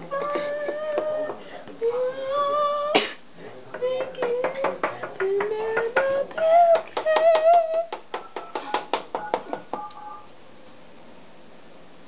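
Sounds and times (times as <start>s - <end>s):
woman singing wordless notes: 0.0s - 3.1s, 3.8s - 7.9s.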